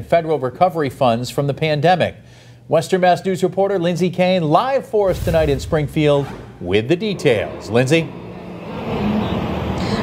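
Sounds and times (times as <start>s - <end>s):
passing vehicle rush: 7.2s - 10.0s.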